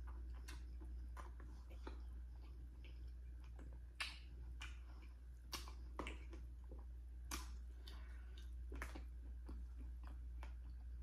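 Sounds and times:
wet mouth clicks and smacks: 0.0 - 10.9
person chewing corn: 0.0 - 11.0
steady low hum: 0.0 - 11.0.

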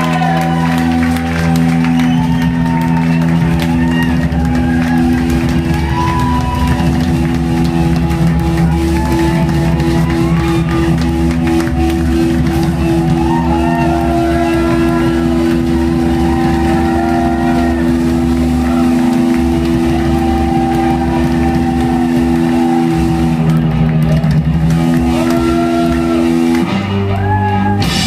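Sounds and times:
bass droning: 0.0 - 28.0
distorted electric guitar droning: 0.0 - 28.0
drums and cymbals: 0.9 - 26.7, 27.6 - 28.0.

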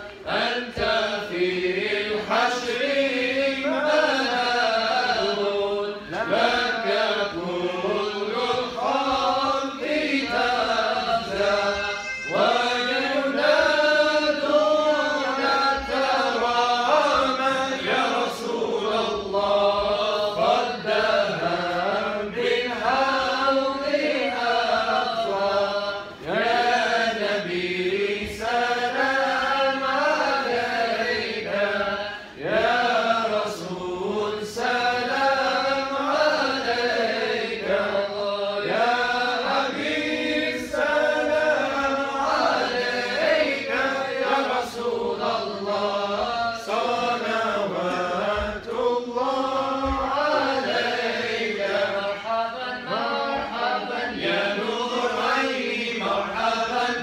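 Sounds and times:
men chanting in unison: 0.0 - 57.0.

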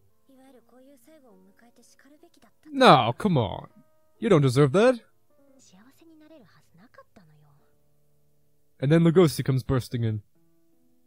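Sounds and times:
woman speaking softly: 0.3 - 2.8, 5.6 - 7.8.

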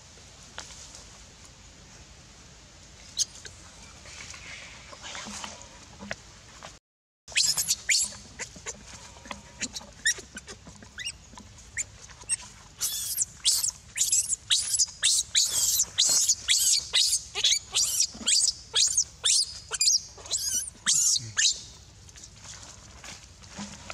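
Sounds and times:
baby monkey squealing: 7.3 - 8.6, 9.6 - 11.2, 11.8 - 21.7.

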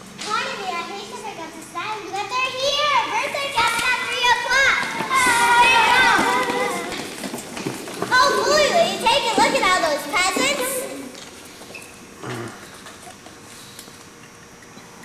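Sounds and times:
young children talking and calling out: 0.2 - 7.3, 7.9 - 11.2.

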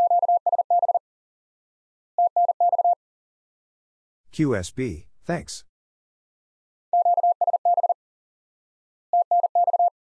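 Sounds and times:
morse code beeps: 0.0 - 1.0, 2.2 - 3.0, 7.0 - 8.0, 9.2 - 9.9.

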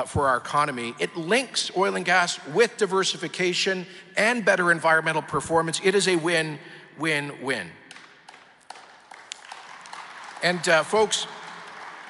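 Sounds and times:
audience applause: 8.7 - 12.0.

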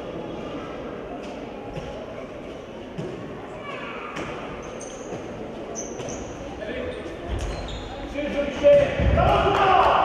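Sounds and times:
murmur of voices: 0.0 - 10.0
short high squeak: 5.8 - 6.4, 7.4 - 8.0.

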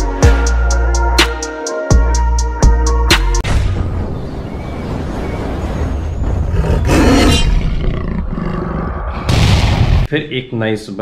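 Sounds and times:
big cat roaring: 6.4 - 9.3.

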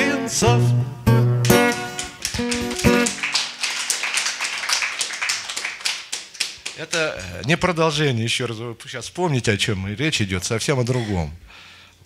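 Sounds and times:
acoustic guitar strummed chords: 0.0 - 3.2
audience applauding: 1.4 - 7.3.

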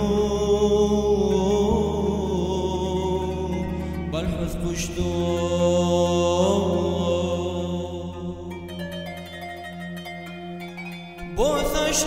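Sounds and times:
gliding chant-like melody: 0.0 - 12.0
plucked string notes: 0.0 - 12.0.

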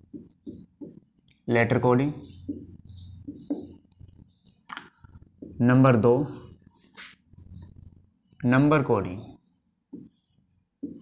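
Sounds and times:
marker squeaking on whiteboard: 0.0 - 8.4, 9.3 - 11.0.

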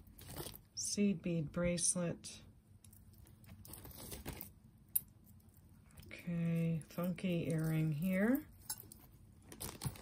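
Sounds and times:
plastic bag rustling: 0.0 - 0.7, 3.2 - 4.6, 9.4 - 10.0.

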